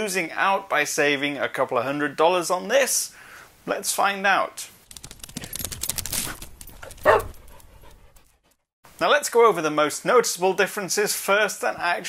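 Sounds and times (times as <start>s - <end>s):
dog panting: 6.7s - 8.7s.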